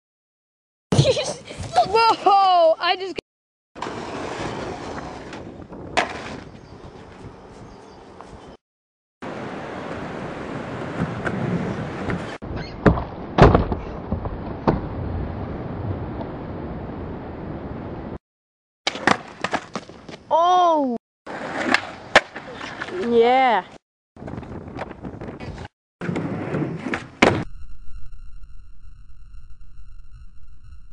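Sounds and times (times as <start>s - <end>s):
skateboard wheels rolling on pavement: 3.8s - 8.5s, 9.3s - 16.4s, 18.9s - 20.3s, 21.3s - 27.4s
skateboard knocking on hard ground: 5.9s - 6.4s, 10.9s - 14.9s, 18.9s - 20.2s
skateboard clack: 18.9s - 20.2s, 21.3s - 23.1s
person shouting: 20.3s - 21.0s.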